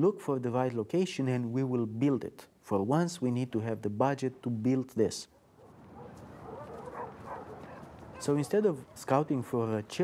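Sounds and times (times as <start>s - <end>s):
faint dog barks: 5.3s - 9.2s.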